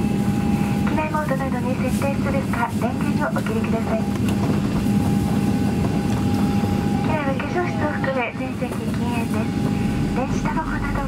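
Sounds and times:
low jet engine hum: 0:00.0 - 0:11.0.

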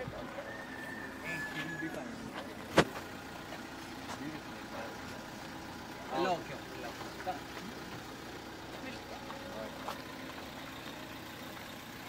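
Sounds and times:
faint voices: 0:00.0 - 0:10.2
car engine idling: 0:00.0 - 0:12.0.

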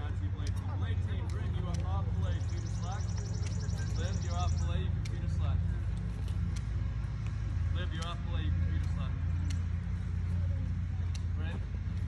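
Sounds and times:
distant voices talking: 0:00.0 - 0:12.0
steady low rumble: 0:00.0 - 0:12.0
light clicks: 0:00.4 - 0:10.0, 0:11.0 - 0:11.3.

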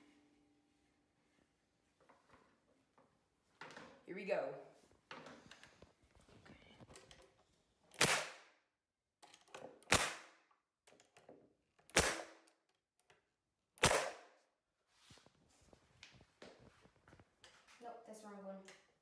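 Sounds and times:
nail gun firing: 0:07.9 - 0:08.5, 0:09.8 - 0:10.4, 0:11.9 - 0:12.6, 0:13.8 - 0:14.4.

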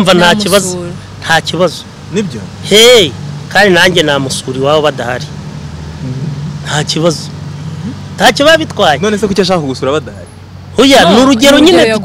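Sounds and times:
low background hum: 0:00.0 - 0:05.3
man speaking: 0:00.0 - 0:05.3, 0:06.3 - 0:07.4, 0:08.2 - 0:12.0.

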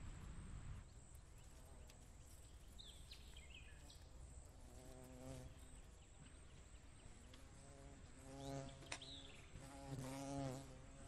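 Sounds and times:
flying insect buzzing: 0:03.7 - 0:05.8, 0:07.4 - 0:11.0.

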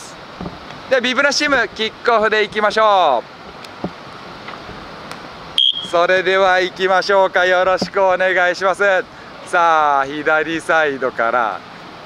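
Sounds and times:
steady background noise: 0:00.0 - 0:12.0
high whistle blast: 0:05.6 - 0:06.0.

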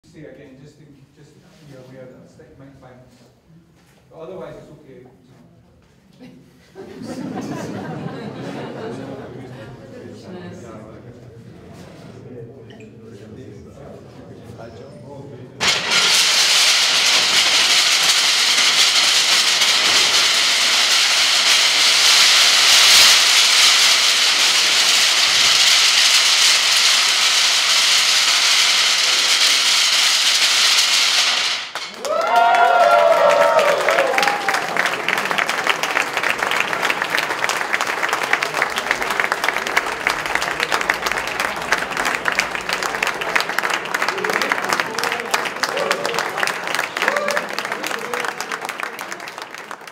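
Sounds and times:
crowd cheering and applauding: 0:15.6 - 0:26.0, 0:30.8 - 0:49.9.

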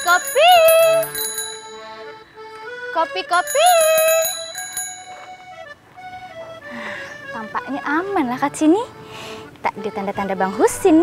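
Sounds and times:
vendor calling out: 0:00.0 - 0:01.2, 0:02.9 - 0:04.6
bicycle bell ringing: 0:00.0 - 0:02.2, 0:03.3 - 0:05.7
light background music: 0:00.0 - 0:11.0.

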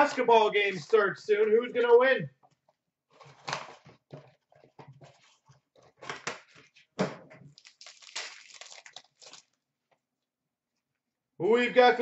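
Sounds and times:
paper and foil rustling: 0:07.6 - 0:09.6.

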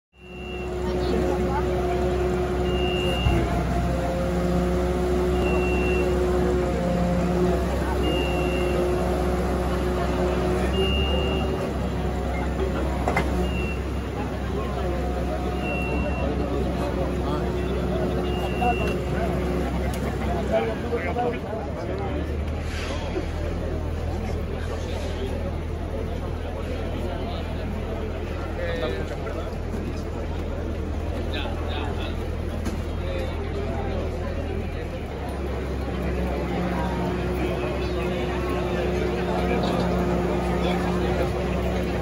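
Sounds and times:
high warning beep: 0:00.2 - 0:00.8, 0:02.6 - 0:03.5, 0:05.3 - 0:06.3, 0:08.0 - 0:09.0, 0:10.7 - 0:11.7, 0:15.5 - 0:16.4, 0:18.2 - 0:19.0
fire engine running: 0:00.2 - 0:42.0
people talking: 0:00.2 - 0:42.0.

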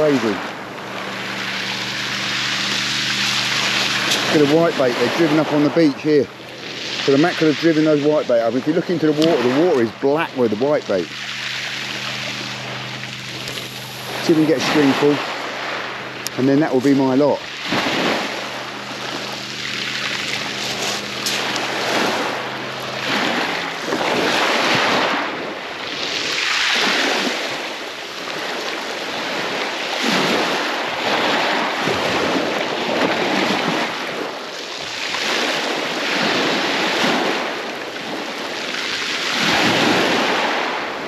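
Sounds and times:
waves washing up shingle beach: 0:00.0 - 0:41.0.

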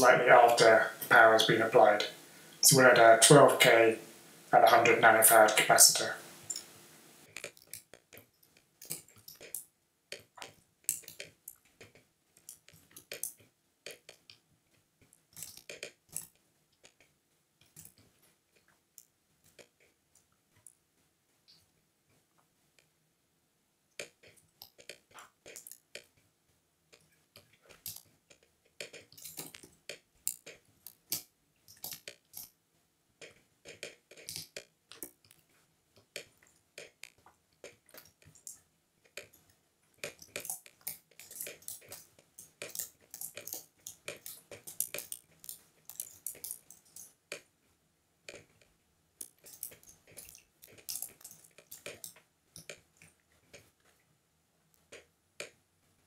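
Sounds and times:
computer mouse clicking: 0:33.2 - 0:47.5.

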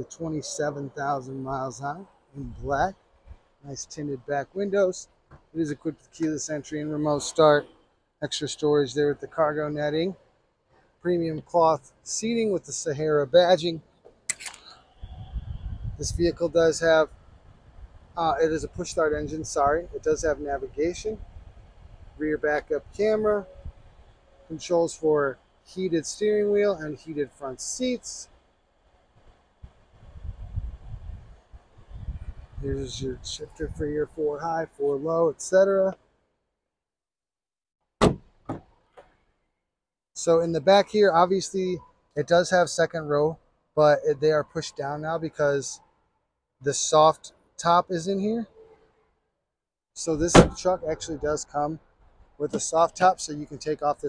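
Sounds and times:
camera handling rumble: 0:14.3 - 0:14.8
sharp click: 0:14.3 - 0:14.8
car door latch click: 0:38.0 - 0:38.7, 0:50.3 - 0:50.6.

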